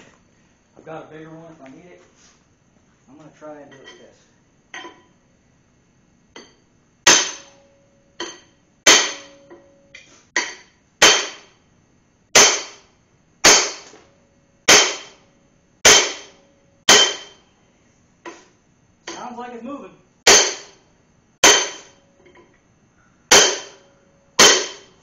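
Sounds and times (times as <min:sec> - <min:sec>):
sledgehammer striking metal bar: 0:06.4 - 0:11.6, 0:12.3 - 0:14.0, 0:14.7 - 0:17.5, 0:19.1 - 0:19.3, 0:20.3 - 0:20.8, 0:21.4 - 0:22.4, 0:23.3 - 0:25.0.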